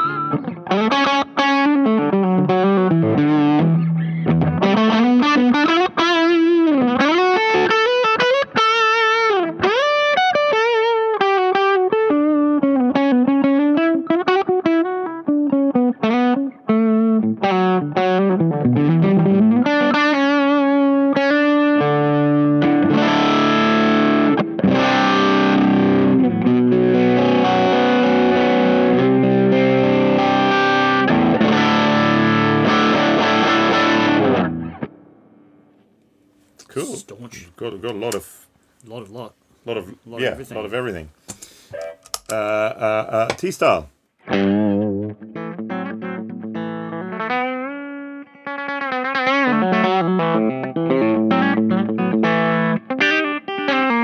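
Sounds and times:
distorted guitar chords: 0.0s - 35.9s, 44.2s - 54.0s
electric guitar lead lines: 0.0s - 36.1s, 44.2s - 54.0s.

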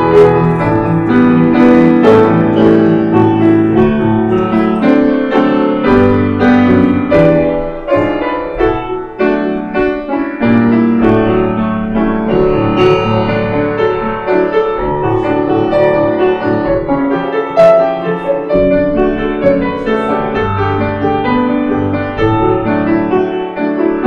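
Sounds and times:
grand piano playing: 0.0s - 24.0s.

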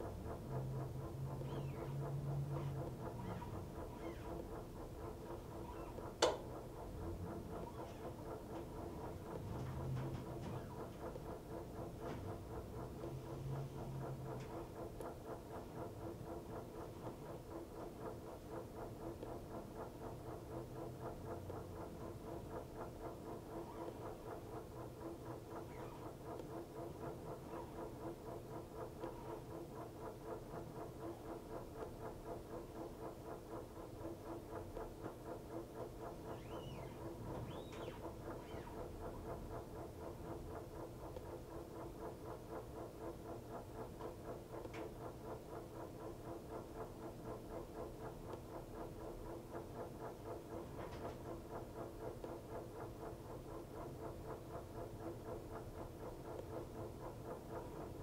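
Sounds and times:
washer hum with fast pulsing: 0.0s - 58.0s
faint high squeaks: 2.6s - 4.4s, 5.6s - 6.0s, 7.6s - 8.1s.

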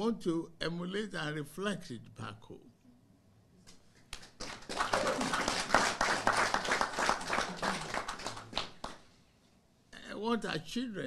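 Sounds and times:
people clapping: 4.0s - 9.1s.

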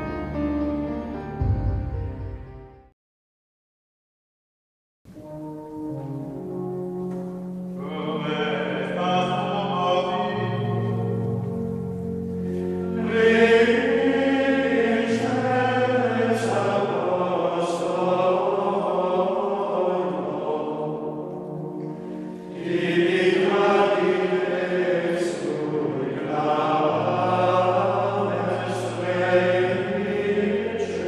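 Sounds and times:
choir chanting held notes: 5.2s - 31.0s.

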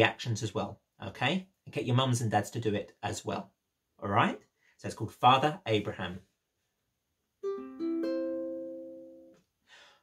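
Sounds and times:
ukulele chord ringing: 7.4s - 9.4s.

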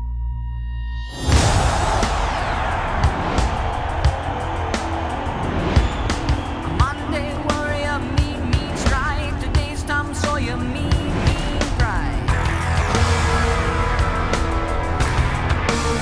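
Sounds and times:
trailer music with sharp hits: 1.0s - 6.7s, 10.4s - 16.0s.

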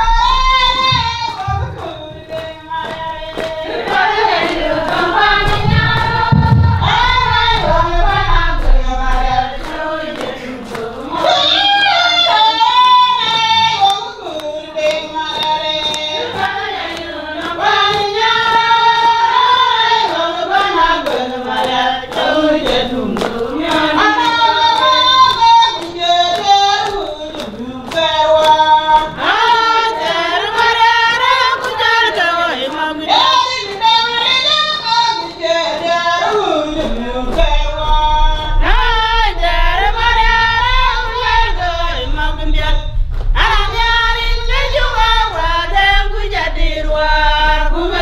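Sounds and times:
sharp percussive strikes: 0.0s - 31.7s
women singing together: 0.0s - 48.0s
sharp hand claps: 0.5s - 48.0s.

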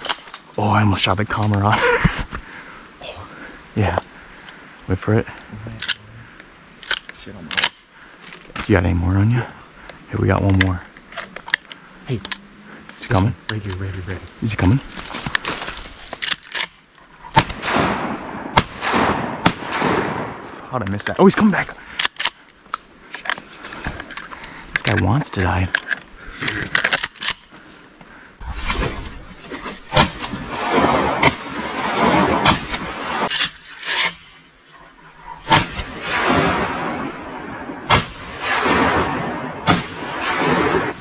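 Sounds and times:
dry stalks rustling: 0.0s - 19.0s, 19.6s - 38.3s.

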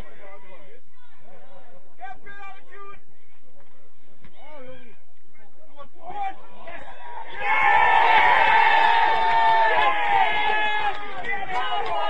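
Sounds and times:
men shouting and calling: 5.8s - 12.0s.

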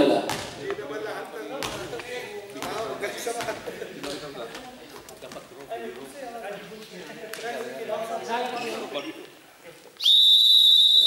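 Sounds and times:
voices chattering in gym: 0.0s - 11.0s
referee's whistle long blast: 10.0s - 11.0s.

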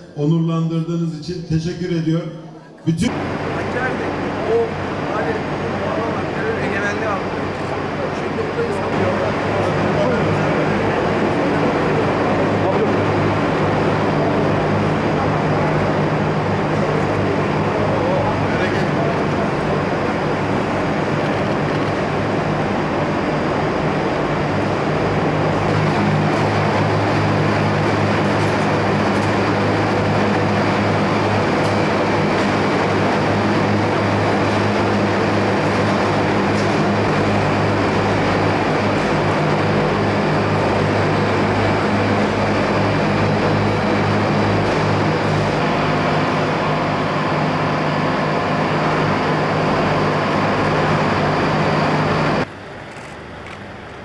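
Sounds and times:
constant low hum: 0.0s - 54.0s
mill machinery droning: 0.0s - 54.0s.

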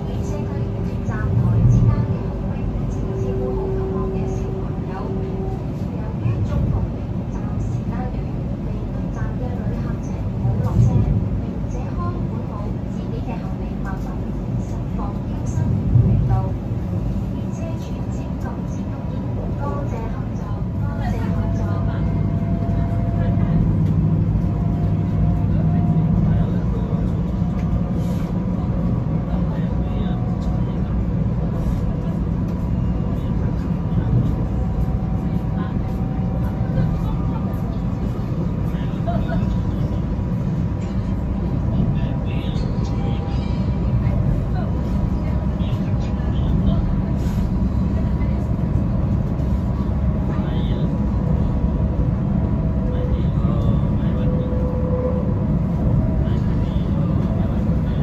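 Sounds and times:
train running gear rumble: 0.0s - 58.0s.

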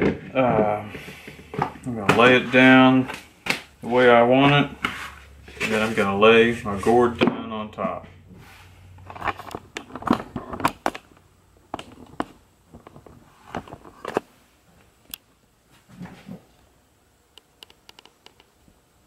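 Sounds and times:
gourd knocking and scraping on workbench: 0.0s - 11.0s.

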